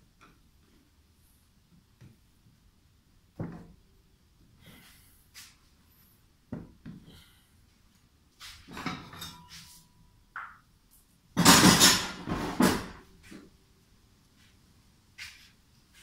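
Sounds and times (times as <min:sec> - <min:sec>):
metal tubing clanking and clattering: 0:11.4 - 0:13.0.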